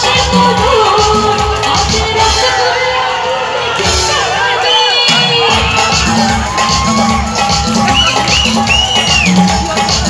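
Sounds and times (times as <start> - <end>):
crowd cheering and shouting: 0.0 - 10.0
loud music with steady beat: 0.0 - 10.0
high-pitched whoops: 4.7 - 9.5.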